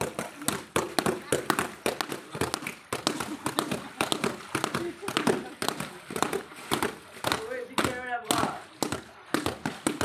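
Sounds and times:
wet cloth slapping: 0:00.0 - 0:10.0
people talking: 0:07.3 - 0:08.7.

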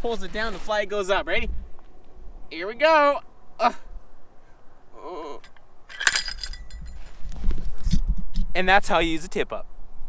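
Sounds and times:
small bell jingling: 0:05.9 - 0:07.0
microphone handling rumble: 0:06.1 - 0:08.6.

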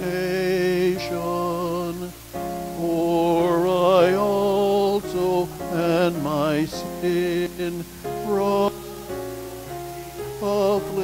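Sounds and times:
hymn music with held notes: 0:00.0 - 0:11.0.

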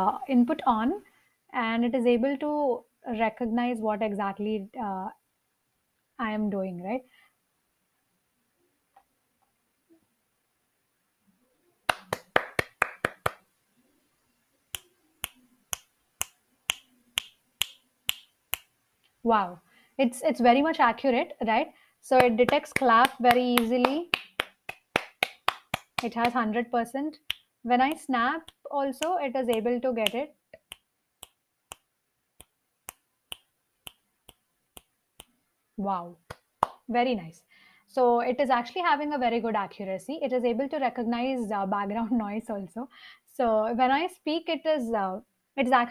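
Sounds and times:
hand claps: 0:11.9 - 0:13.4, 0:14.8 - 0:18.7, 0:22.2 - 0:26.4, 0:36.3 - 0:36.8
finger snaps: 0:14.8 - 0:18.7, 0:29.5 - 0:35.4.

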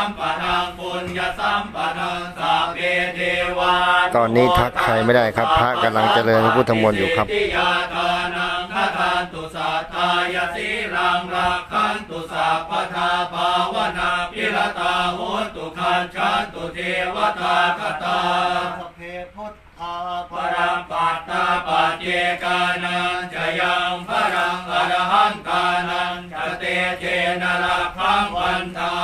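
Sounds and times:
monks chanting in monotone: 0:00.0 - 0:29.0.

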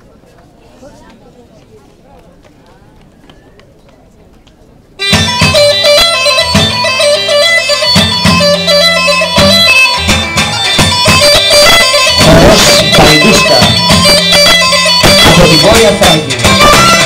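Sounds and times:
faint background murmur: 0:00.0 - 0:17.0
bagpipe folk dance music: 0:05.0 - 0:17.0
plucked strings: 0:05.0 - 0:17.0.

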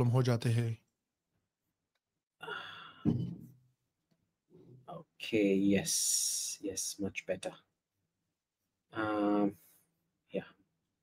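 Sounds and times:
person sighing: 0:02.4 - 0:03.2.

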